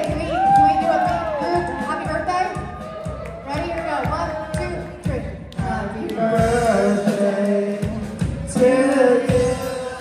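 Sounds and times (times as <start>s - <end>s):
rock band playing: 0.0s - 10.0s.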